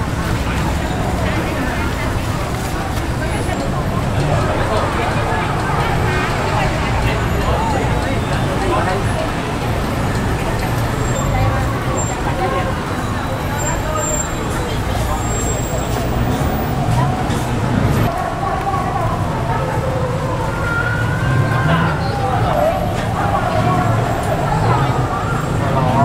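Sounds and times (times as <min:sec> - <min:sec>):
people talking indistinctly: 0:00.0 - 0:26.0
traffic rumble: 0:00.0 - 0:26.0.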